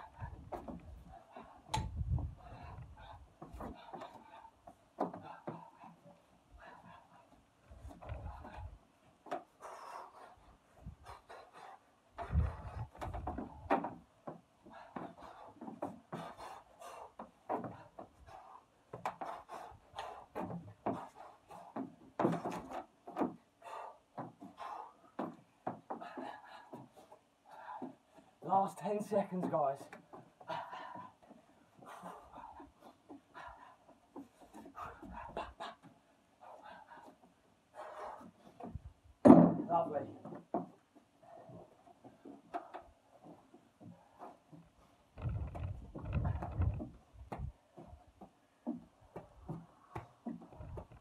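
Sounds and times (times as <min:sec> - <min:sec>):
low dull thuds: 0:00.0 - 0:09.4, 0:10.4 - 0:23.4, 0:37.8 - 0:51.0
man breathing: 0:00.0 - 0:28.4, 0:29.8 - 0:39.0, 0:41.0 - 0:51.0.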